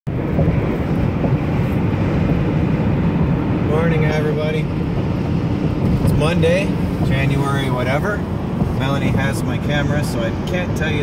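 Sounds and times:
car road noise: 0:00.1 - 0:11.0.

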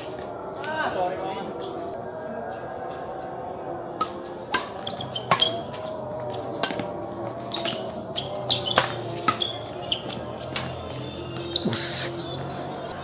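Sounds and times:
night insects chirping: 0:00.0 - 0:13.0
rackets striking shuttlecock: 0:04.0 - 0:05.8, 0:06.6 - 0:06.9, 0:07.5 - 0:11.6.

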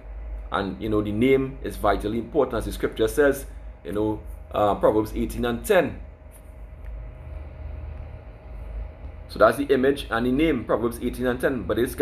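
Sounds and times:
faint steady hum: 0:00.0 - 0:12.0
low background rumble: 0:00.0 - 0:12.0.

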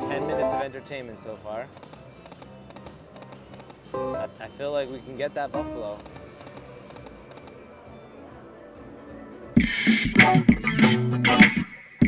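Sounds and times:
slot machine game sounds: 0:00.0 - 0:08.6.

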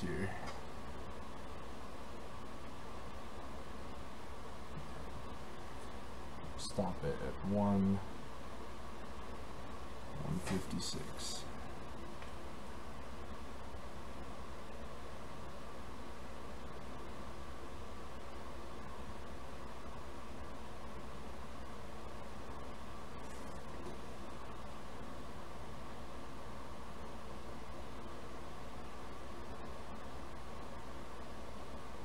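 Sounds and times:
low electrical hum: 0:00.0 - 0:32.0
steady hiss: 0:00.0 - 0:32.0.

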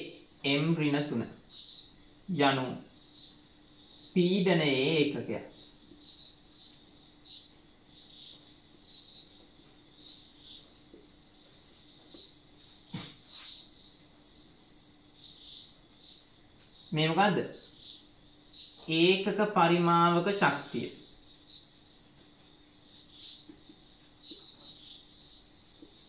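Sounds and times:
crickets chirping: 0:00.0 - 0:26.0
steady background hum: 0:00.0 - 0:26.0.

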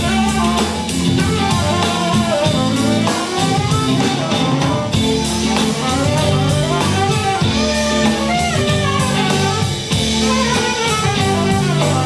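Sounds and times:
bass: 0:00.0 - 0:12.0
drum kit steady beat: 0:00.0 - 0:12.0
electric guitar: 0:00.0 - 0:12.0
tenor saxophone melody: 0:00.0 - 0:12.0.

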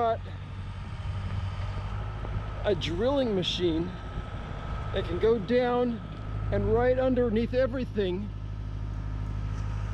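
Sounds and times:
engine idling: 0:00.0 - 0:09.9.

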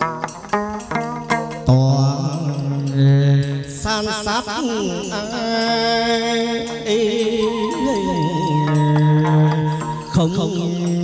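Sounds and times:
plucked lute notes: 0:00.0 - 0:11.0
person singing long low note: 0:06.0 - 0:11.0.

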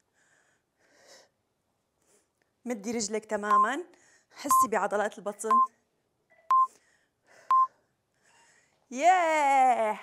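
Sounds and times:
timer click: 0:03.5 - 0:03.7
short electronic beeps: 0:05.5 - 0:05.7, 0:06.4 - 0:06.7, 0:07.5 - 0:07.7.

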